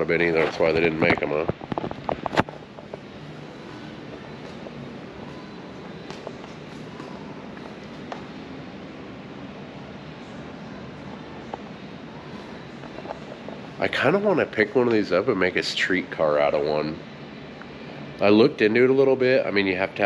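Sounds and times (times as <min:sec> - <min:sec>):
ventilation hiss: 0:00.0 - 0:20.0.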